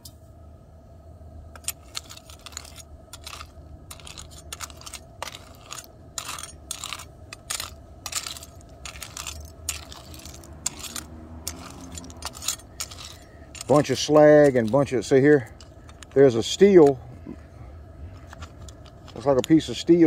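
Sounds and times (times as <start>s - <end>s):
low steady rumble: 0.0s - 20.0s
metal spoon scraping in pot: 1.6s - 16.9s.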